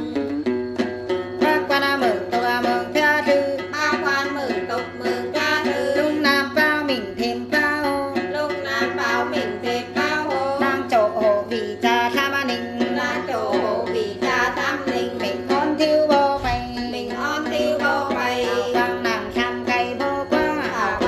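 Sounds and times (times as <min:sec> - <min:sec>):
plucked lute strummed: 0:00.0 - 0:21.0
women singing a chant: 0:01.4 - 0:21.0.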